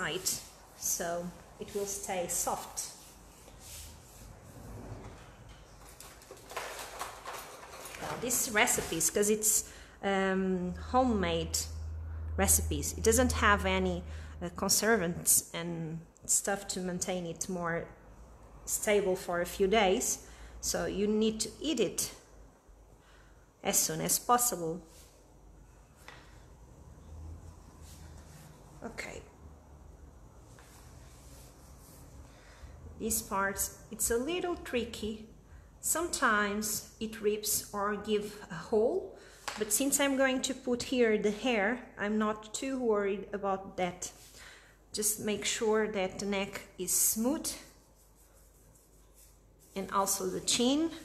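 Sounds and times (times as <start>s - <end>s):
hand rubbing fondant on cake: 0.0s - 5.0s, 30.3s - 34.8s, 45.4s - 51.0s
soft brushing strokes: 0.0s - 6.0s, 23.7s - 35.2s, 43.9s - 44.4s, 45.2s - 51.0s.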